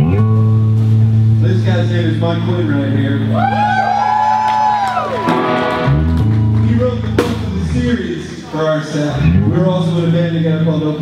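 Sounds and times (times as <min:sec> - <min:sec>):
electric guitar chord drone: 0:05.2 - 0:08.0
person talking: 0:06.6 - 0:11.0.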